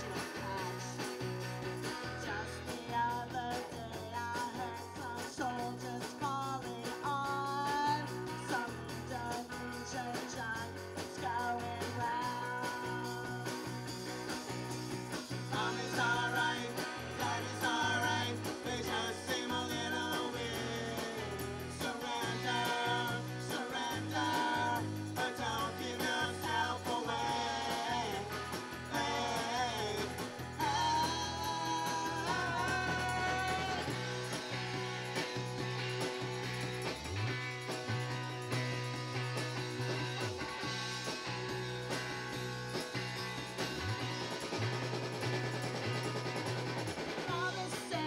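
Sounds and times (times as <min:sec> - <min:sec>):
man singing: 0:00.0 - 0:01.1, 0:02.2 - 0:13.8, 0:15.4 - 0:34.0, 0:47.3 - 0:48.0
drums: 0:00.0 - 0:48.0
electric guitar: 0:00.0 - 0:48.0
woman singing lead: 0:02.2 - 0:13.8, 0:15.5 - 0:34.0, 0:47.3 - 0:48.0.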